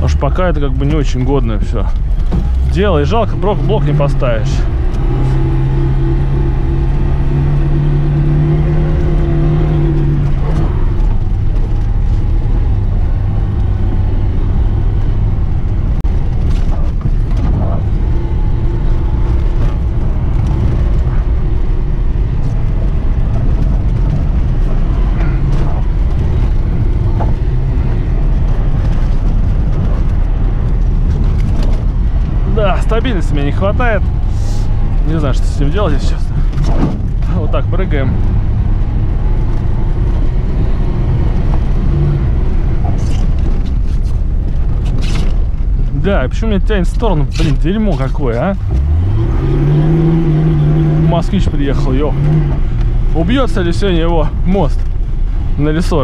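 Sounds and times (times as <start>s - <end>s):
car engine under load: 0.0s - 56.0s
road rumble: 0.0s - 56.0s
knocks from rough track: 36.5s - 37.4s.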